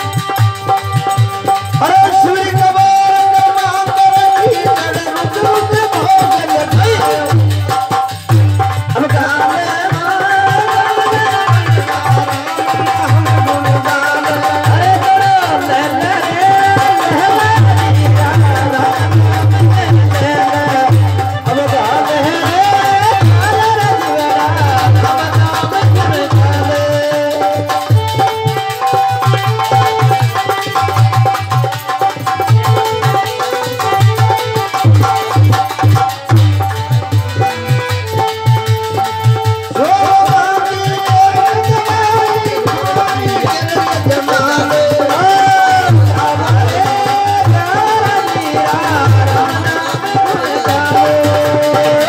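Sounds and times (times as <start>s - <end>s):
harmonium melody: 0.0s - 52.0s
men singing: 0.0s - 52.0s.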